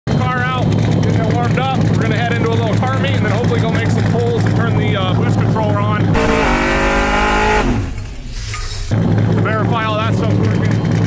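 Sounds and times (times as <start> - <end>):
car engine idling: 6.1 - 9.2.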